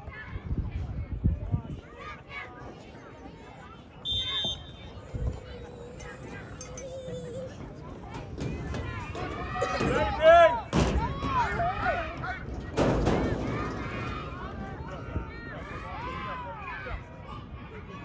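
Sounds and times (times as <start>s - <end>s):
people shouting and calling out: 4.0s - 18.0s.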